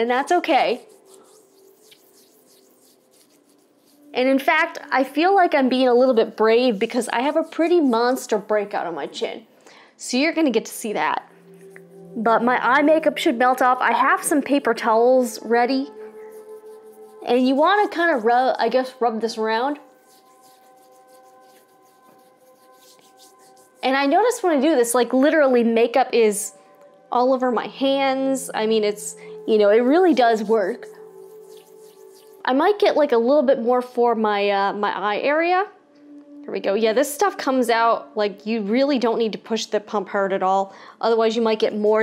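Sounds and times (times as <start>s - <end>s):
fingertips rubbing skin: 0.2s - 9.0s, 11.5s - 13.2s, 15.8s - 24.7s, 29.6s - 32.5s.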